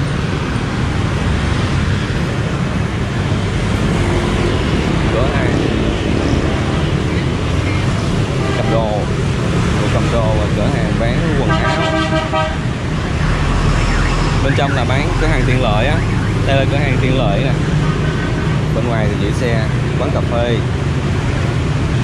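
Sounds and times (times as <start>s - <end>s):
motorbike traffic rumble: 0.0s - 22.0s
vehicle horn honking: 8.4s - 8.9s, 11.4s - 12.6s.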